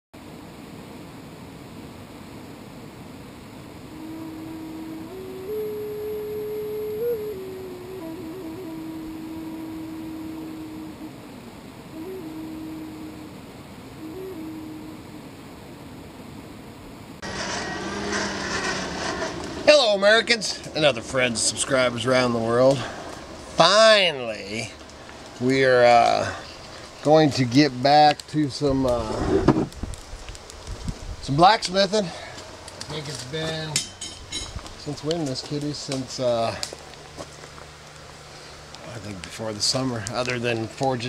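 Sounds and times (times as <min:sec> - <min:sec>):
slow tune of held notes: 0:03.8 - 0:16.0
loud bright noise: 0:17.2 - 0:24.7.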